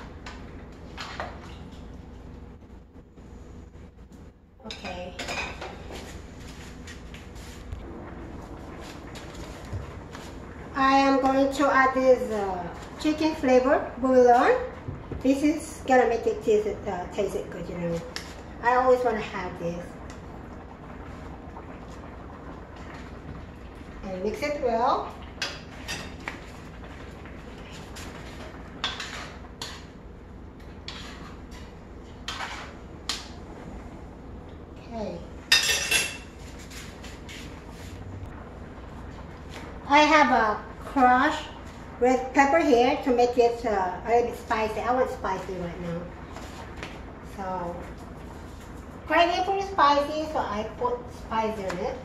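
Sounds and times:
low steady hum: 0:00.0 - 0:52.0
curry simmering: 0:18.1 - 0:34.8
metal pot and utensils clattering: 0:35.5 - 0:36.4.

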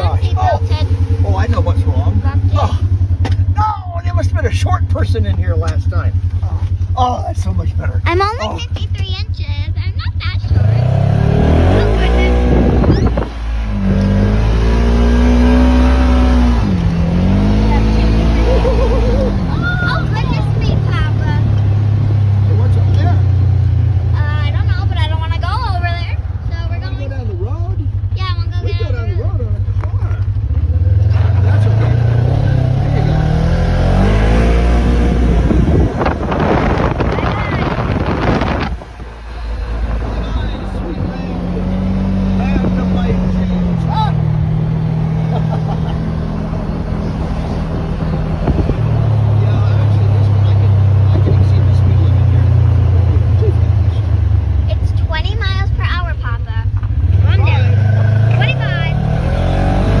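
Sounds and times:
off-road vehicle engine accelerating: 0:00.0 - 1:00.0.

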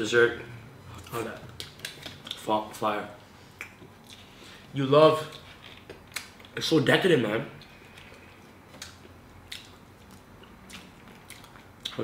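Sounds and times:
chewing: 0:07.7 - 0:12.0.

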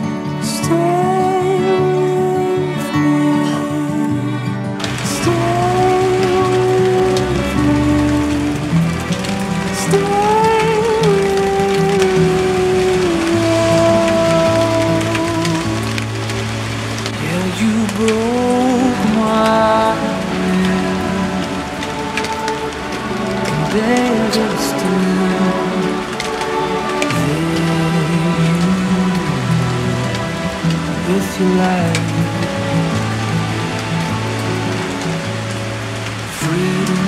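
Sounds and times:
slow background music: 0:00.0 - 0:37.0
rain pattering on leaves: 0:00.3 - 0:37.0.

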